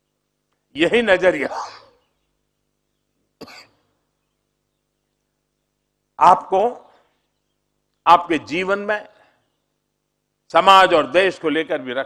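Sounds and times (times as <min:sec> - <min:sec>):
person coughing: 0:01.5 - 0:02.0, 0:03.4 - 0:03.8.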